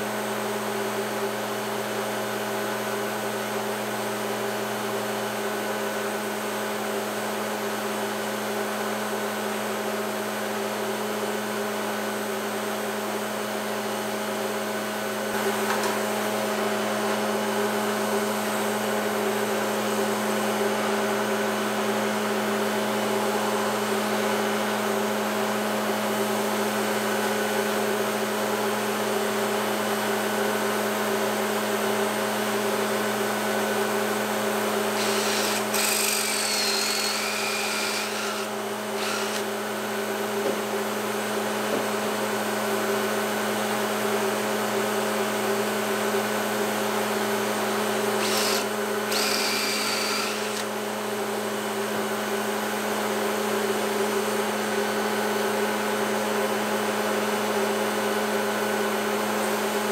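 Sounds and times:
electric motor humming: 0:34.9 - 0:39.6, 0:48.2 - 0:50.8.

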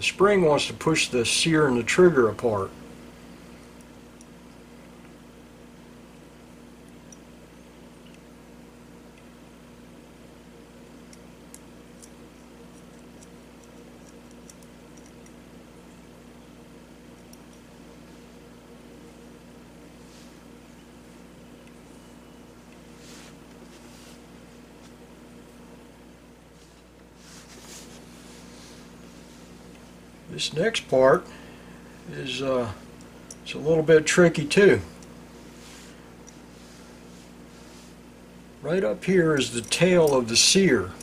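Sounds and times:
low steady hum: 0:00.0 - 0:41.0
small metal parts clicking: 0:11.1 - 0:15.4.

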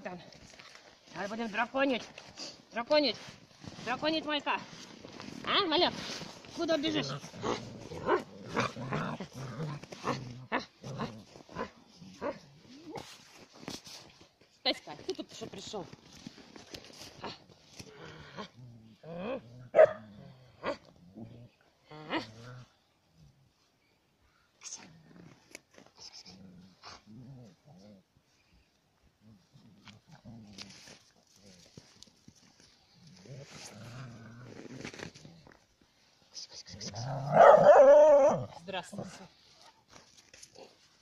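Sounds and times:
puppy growling: 0:06.8 - 0:11.7.

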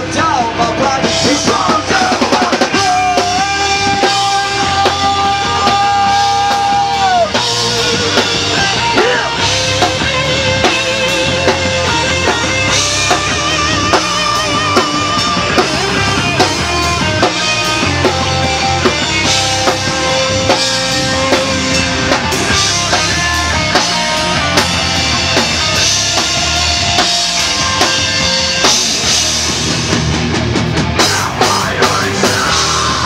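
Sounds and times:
drum kit: 0:00.0 - 0:33.0
electric guitar: 0:00.0 - 0:33.0.

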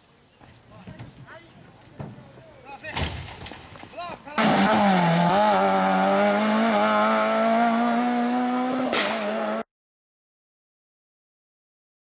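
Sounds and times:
car engine at high revs: 0:04.4 - 0:09.6.

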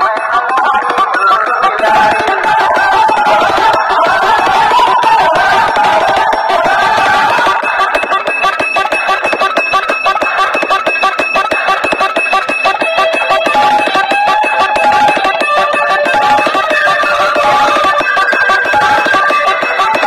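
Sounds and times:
fast steady beat: 0:00.0 - 0:20.0
loud music from horn loudspeakers: 0:00.0 - 0:20.0.

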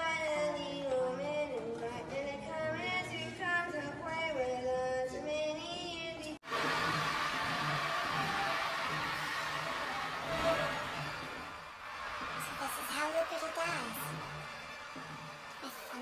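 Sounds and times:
crowd cheering and applauding: 0:06.4 - 0:16.0.

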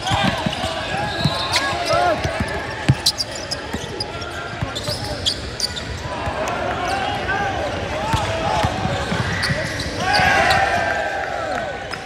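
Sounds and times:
basketball dribbling on wood floor: 0:00.0 - 0:03.1
shoe squeaks: 0:00.0 - 0:06.1, 0:08.1 - 0:10.7.

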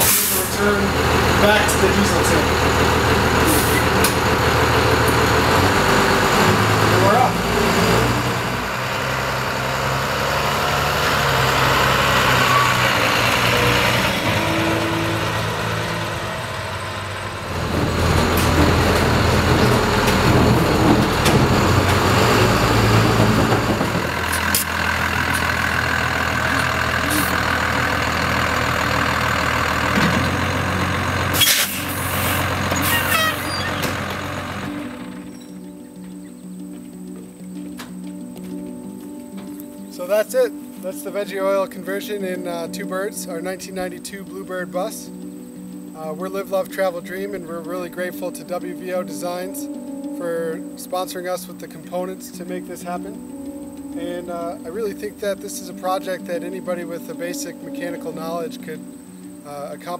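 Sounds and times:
diesel bus engine running: 0:00.0 - 0:50.7.

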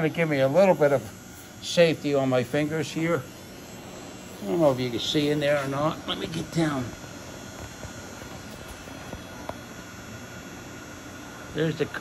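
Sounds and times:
workshop hum and hiss: 0:00.0 - 0:12.0.

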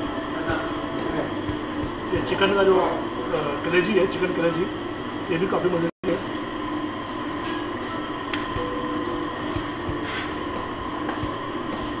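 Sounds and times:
machine hum and rumble: 0:00.0 - 0:12.0.

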